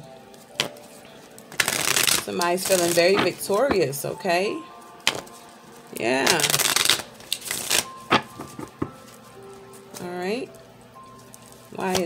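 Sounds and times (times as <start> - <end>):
cards riffling: 0.3 - 3.8, 5.0 - 10.1.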